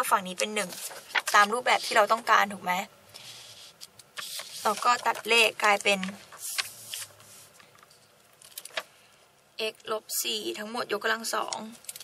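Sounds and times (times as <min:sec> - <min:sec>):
paper rustling and sliding: 0:00.5 - 0:02.2, 0:03.2 - 0:07.7.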